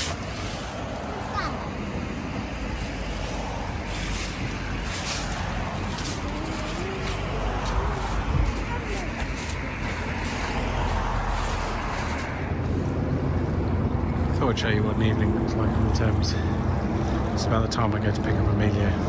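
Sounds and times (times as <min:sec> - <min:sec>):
traffic rumble: 0:00.0 - 0:19.0
faint voices: 0:03.2 - 0:12.3.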